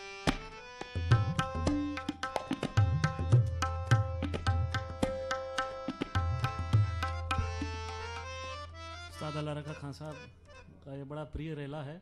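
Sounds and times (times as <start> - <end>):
harmonium melody: 0.0 - 11.3
tabla strokes: 0.2 - 8.5
man speaking: 9.2 - 12.0.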